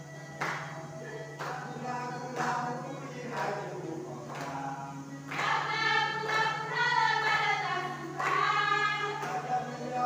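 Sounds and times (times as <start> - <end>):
choir singing: 0.4 - 10.0.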